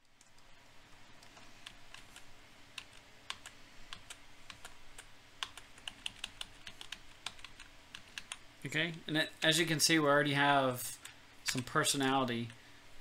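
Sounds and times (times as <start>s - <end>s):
keyboard keys clicking: 1.2s - 8.4s.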